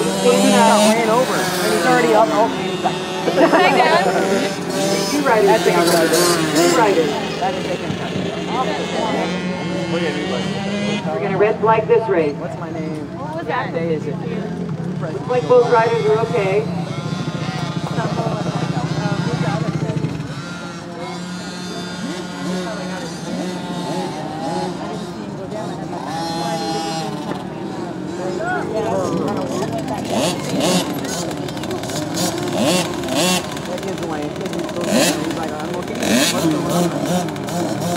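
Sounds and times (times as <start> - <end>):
dirt bike engines idling: 0.0 - 37.9
people talking: 0.0 - 37.9.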